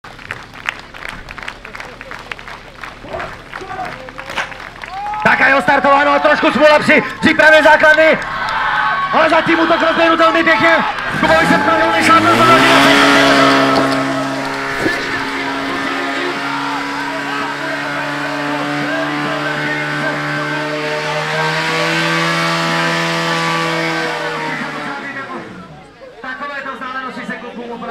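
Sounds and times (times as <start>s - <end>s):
pump engine revving: 8.8s - 25.8s.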